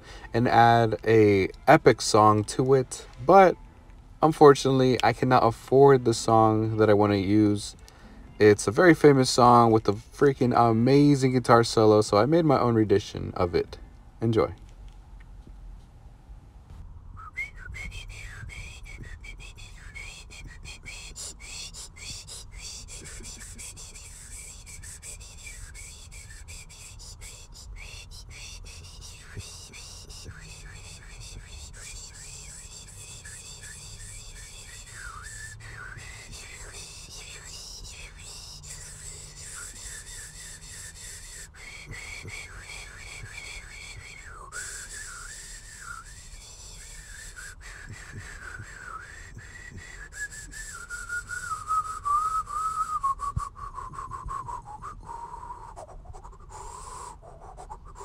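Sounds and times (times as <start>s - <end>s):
person whistling a tune: 17.1s - 57.1s.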